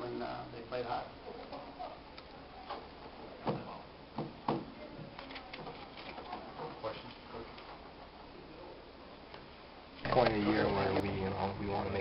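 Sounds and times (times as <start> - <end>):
knocks on a table: 3.4 - 4.7
papers and objects handled: 5.0 - 7.8.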